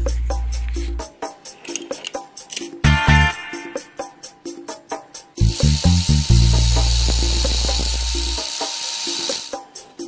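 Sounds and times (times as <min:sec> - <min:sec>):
short bass beats: 0:05.4 - 0:08.3
steady high hiss: 0:05.4 - 0:09.6.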